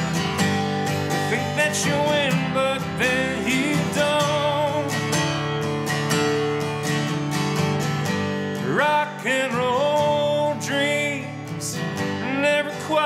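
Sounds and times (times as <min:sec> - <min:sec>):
acoustic guitar playing: 0:00.0 - 0:13.0.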